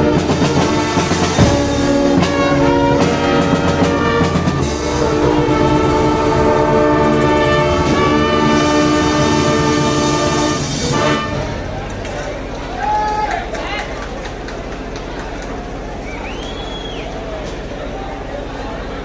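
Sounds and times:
brass band holding a chord: 0.0 - 12.8
outdoor crowd hum: 0.0 - 19.0
short calls from crowd: 10.8 - 18.9.

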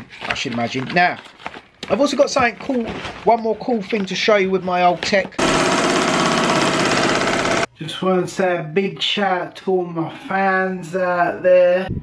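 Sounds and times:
embroidery machine chattering: 5.4 - 7.7.

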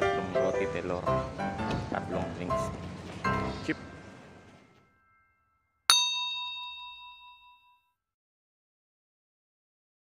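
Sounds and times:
bell-like ding: 4.7 - 7.9.

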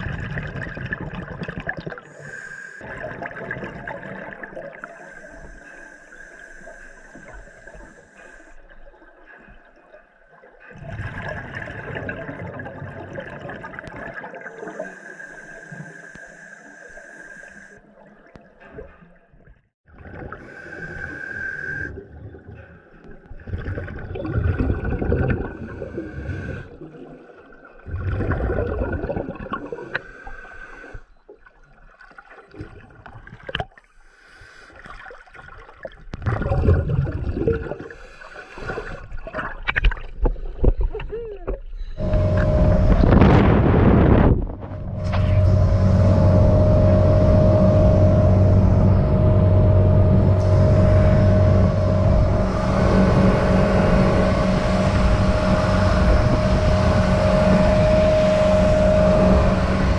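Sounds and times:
exhaled bubbles bursting: 0.0 - 2.1, 2.8 - 5.0, 10.7 - 14.8, 21.7 - 30.0, 35.0 - 37.9
regulator hissing inhalation: 2.1 - 2.8, 4.8 - 8.6, 14.6 - 17.8, 20.4 - 22.0, 25.5 - 26.7, 29.6 - 31.1, 37.9 - 39.1
steady high tone: 42.0 - 59.9.

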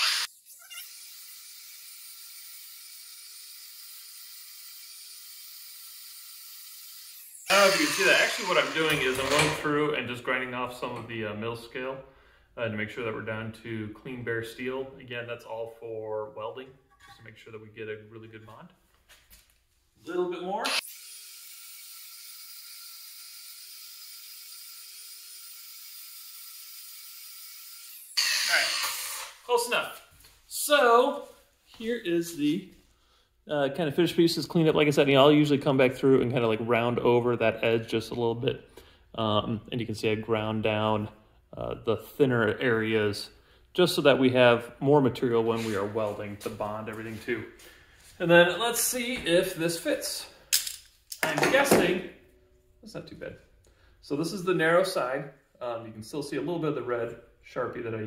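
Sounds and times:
angle grinder grinding steel: 0.0 - 9.7, 20.6 - 29.5.

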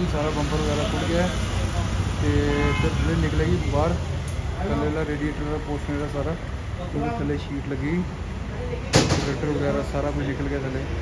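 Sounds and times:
vehicle horn: 2.4 - 3.2.

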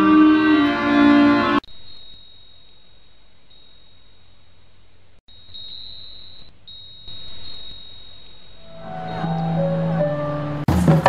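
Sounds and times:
music: 0.0 - 1.6, 8.6 - 11.0.

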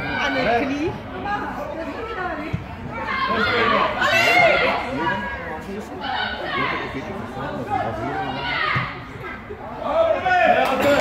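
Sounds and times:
voices calling and chattering: 0.0 - 11.0.

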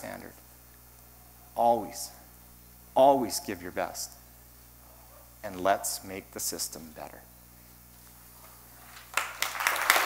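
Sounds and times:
audience applause: 9.1 - 10.0.

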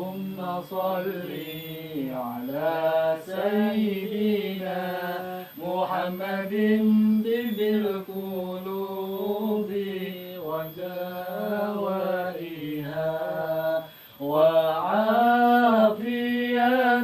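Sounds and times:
man chanting melodically: 0.0 - 17.0.

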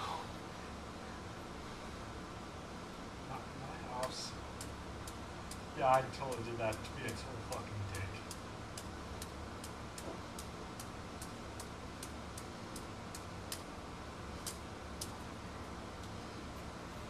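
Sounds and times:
steady low hum: 0.0 - 17.0
faint regular ticking: 3.3 - 16.2.

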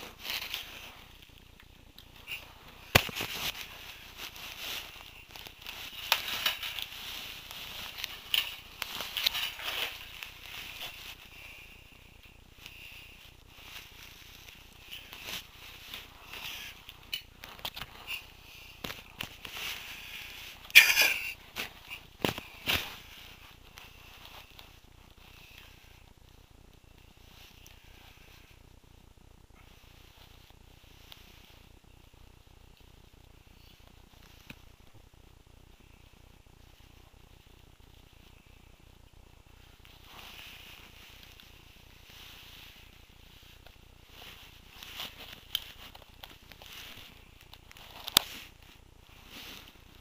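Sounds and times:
faint steady hiss: 0.0 - 50.0
soft rustling: 0.0 - 50.0.

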